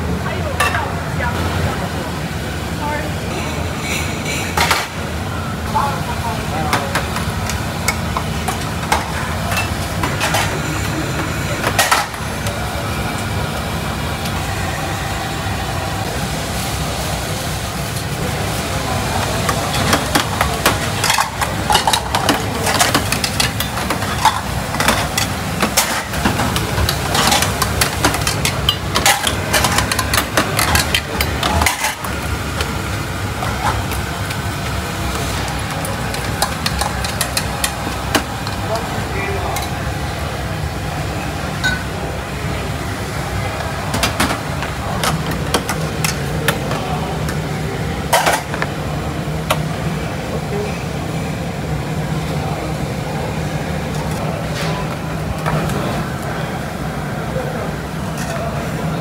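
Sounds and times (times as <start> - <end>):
boiler rumble: 0.0 - 59.0.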